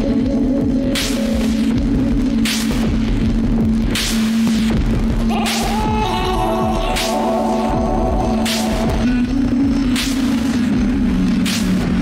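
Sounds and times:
low synth drone: 0:00.0 - 0:12.0
noisy snare-like hits: 0:02.4 - 0:03.0, 0:11.4 - 0:12.0.

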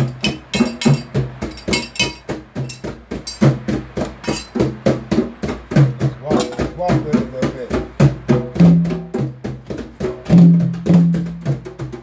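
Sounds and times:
hand drum struck by hand: 0:00.0 - 0:12.0
person speaking: 0:06.2 - 0:07.8.

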